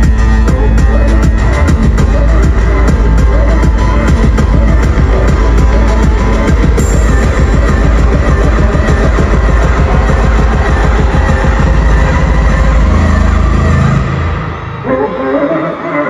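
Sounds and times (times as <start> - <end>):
loud pop concert music: 0.0 - 16.0.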